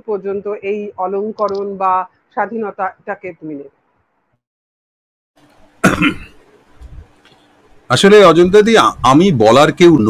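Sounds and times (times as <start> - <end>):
man coughing: 5.8 - 6.4.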